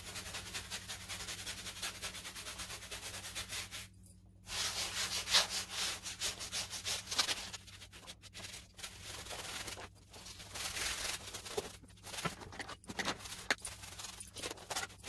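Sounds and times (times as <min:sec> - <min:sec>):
paintbrush scrubbing on canvas: 0:00.0 - 0:03.9, 0:04.5 - 0:15.0.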